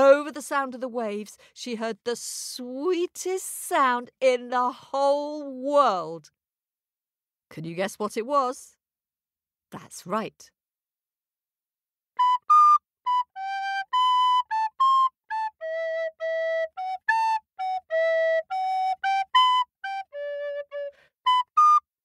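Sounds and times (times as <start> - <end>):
flute melody: 12.2 - 22.0.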